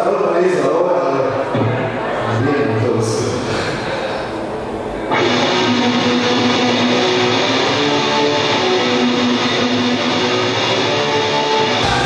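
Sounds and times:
distorted electric guitar riff: 0:03.1 - 0:12.0.

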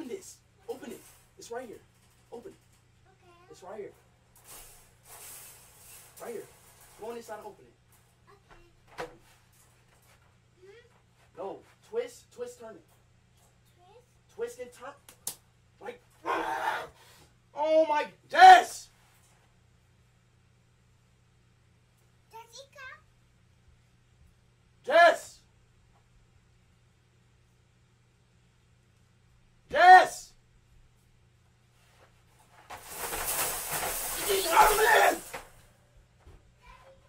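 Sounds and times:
man yelling harshly: 0:16.2 - 0:17.0, 0:17.6 - 0:18.9, 0:24.8 - 0:25.4, 0:29.7 - 0:30.3, 0:34.1 - 0:35.4.

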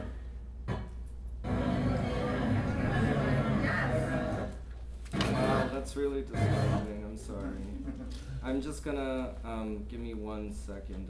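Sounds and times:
music underneath: 0:01.4 - 0:04.5.

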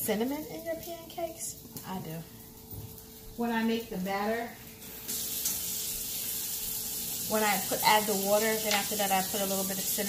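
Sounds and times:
sausage sizzling in a pan: 0:00.0 - 0:10.0.

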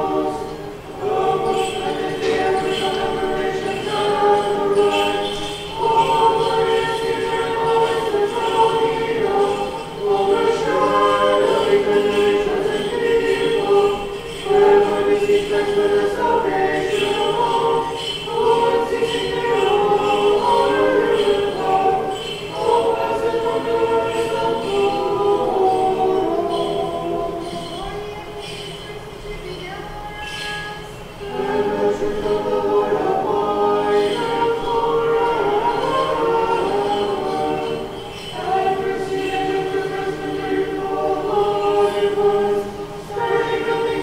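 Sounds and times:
choir singing a cappella chant: 0:00.0 - 0:44.0.

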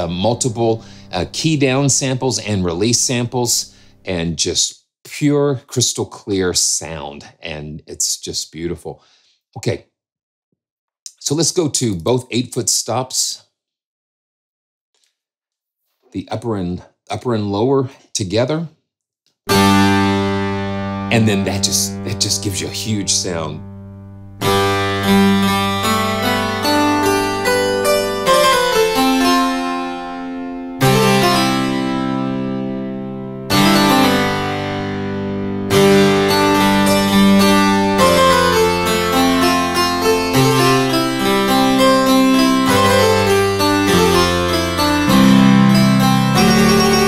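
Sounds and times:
harpsichord chords: 0:00.0 - 0:03.7, 0:19.5 - 0:47.0.

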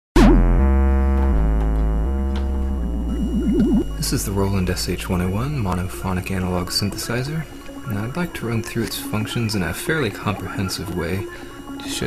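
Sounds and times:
synth tone wobbling in pitch: 0:00.2 - 0:06.7
synthesizer held low note: 0:00.2 - 0:12.0.

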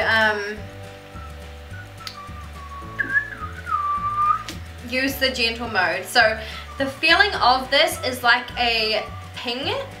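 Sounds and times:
background music with bass line: 0:00.0 - 0:10.0
person whistling: 0:01.2 - 0:04.5.

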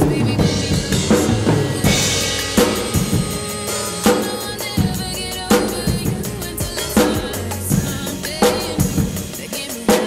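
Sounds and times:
drum kit playing: 0:00.0 - 0:10.0
recorded song bass line: 0:00.0 - 0:10.0
cymbal crash: 0:00.5 - 0:05.9.

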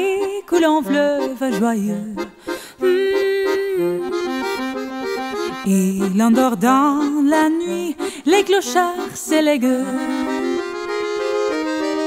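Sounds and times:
person singing: 0:00.0 - 0:04.8, 0:05.4 - 0:10.8
accordion playing held chord: 0:00.0 - 0:12.0.

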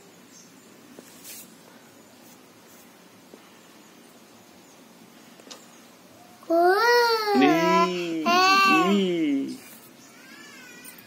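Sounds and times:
child's wavering vocal sound: 0:06.5 - 0:09.0.

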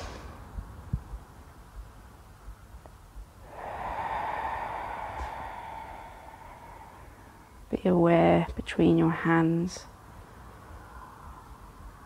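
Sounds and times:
slow out-breath: 0:03.4 - 0:07.7.

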